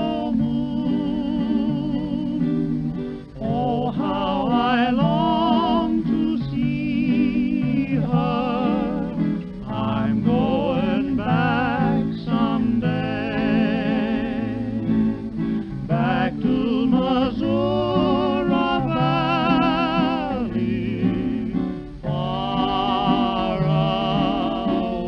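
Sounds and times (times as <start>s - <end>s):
acoustic guitars: 0.0s - 25.0s
man singing with vibrato: 0.0s - 25.0s.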